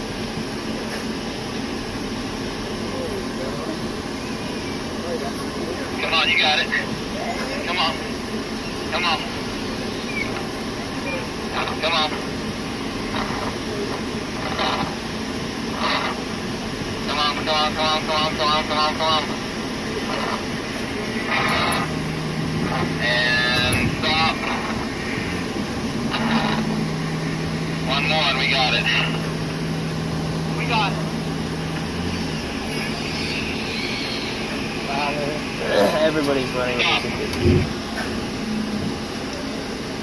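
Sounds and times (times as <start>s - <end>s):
bus engine running: 0.0s - 40.0s
rushing cabin noise: 0.0s - 40.0s.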